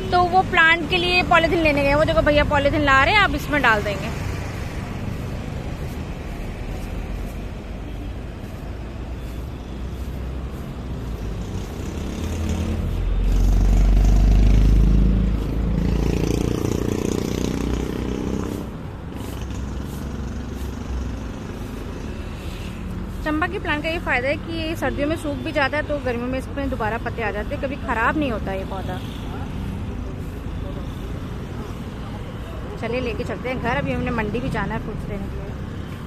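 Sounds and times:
road traffic passing: 0.0s - 36.0s
vehicle low rumble passing: 1.7s - 24.8s.

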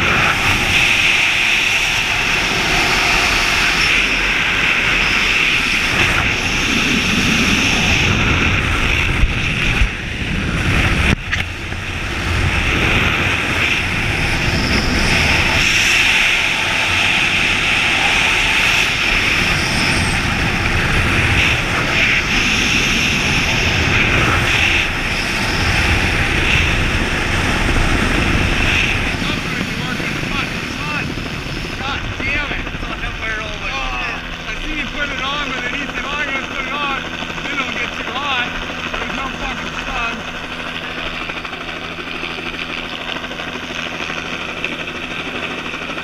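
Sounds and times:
helicopter rotor and turbine noise: 0.0s - 46.0s
wind buffeting microphone: 0.0s - 46.0s.

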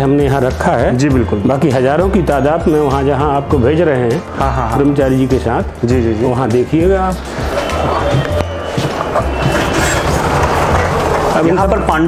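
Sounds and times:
music with pulsing bass beat: 0.1s - 12.0s
cabinet door rolling on track: 7.3s - 11.9s.

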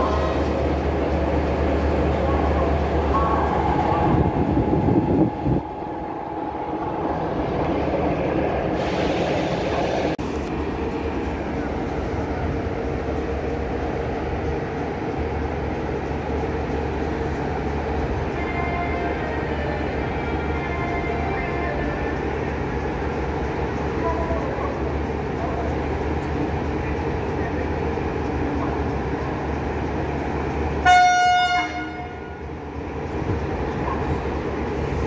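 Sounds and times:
locomotive low hum: 0.0s - 30.9s.

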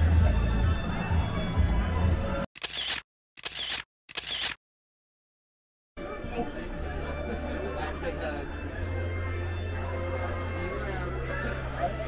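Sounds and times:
background music: 0.0s - 2.5s, 6.0s - 12.0s
crowd noise: 0.0s - 2.5s, 6.0s - 12.0s
camera shutter sounds: 2.6s - 4.6s.

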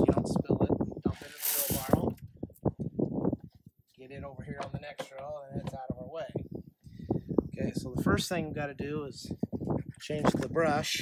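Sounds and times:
corn pouring rattling hiss: 1.1s - 2.0s.

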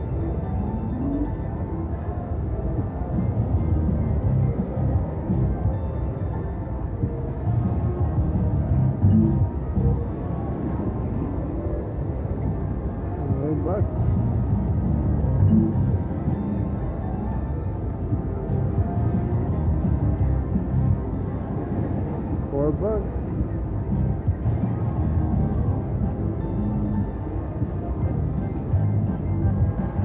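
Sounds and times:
murmur of voices: 0.0s - 30.0s.

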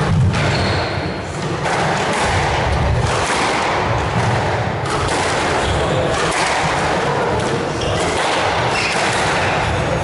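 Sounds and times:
background hall noise: 0.0s - 10.0s
squash ball struck by racquets: 0.0s - 10.0s.

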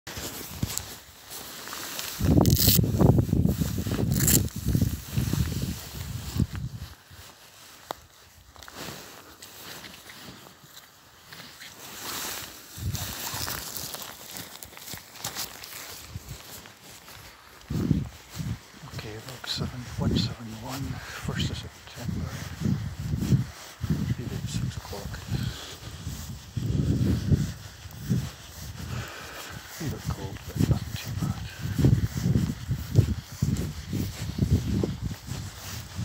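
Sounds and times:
bare feet walking on grass: 0.1s - 36.0s
low buffeting on microphone: 2.1s - 7.4s, 12.7s - 13.6s, 17.2s - 36.0s.

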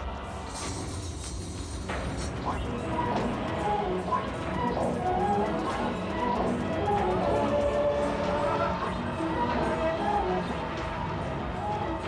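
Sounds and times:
low drone: 0.0s - 12.0s
suspense music held notes: 0.0s - 12.0s.

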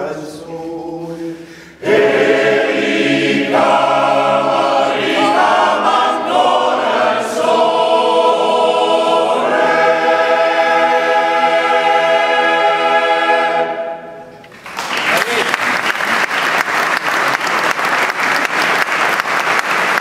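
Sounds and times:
male choir singing in harmony: 0.0s - 14.3s.

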